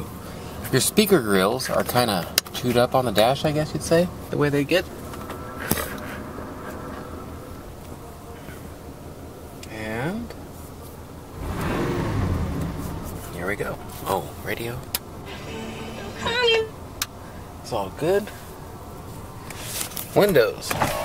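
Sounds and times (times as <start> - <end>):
radio voices and tones: 15.3 - 16.8.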